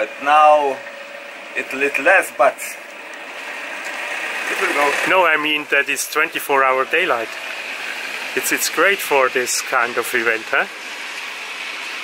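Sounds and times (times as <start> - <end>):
man speaking: 0.0 - 0.8, 1.6 - 2.8, 4.5 - 7.4, 8.4 - 10.7
car driving on wet pavement: 0.6 - 12.0.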